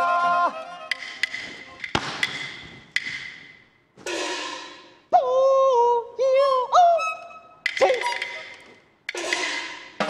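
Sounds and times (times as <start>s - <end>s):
sharp percussion strikes: 0.9s - 5.1s, 7.6s - 10.0s.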